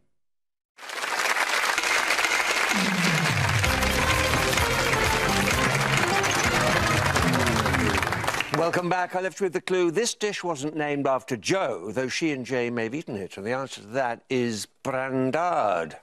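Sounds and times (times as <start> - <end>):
studio audience applause: 0.8 - 9.0
game show theme music: 2.7 - 8.6.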